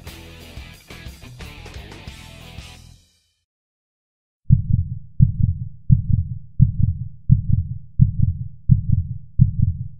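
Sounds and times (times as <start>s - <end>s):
heartbeat thumps: 4.5s - 9.9s.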